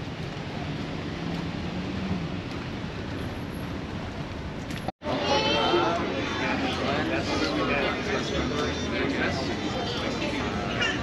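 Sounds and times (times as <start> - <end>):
street traffic noise: 0.0 - 11.0.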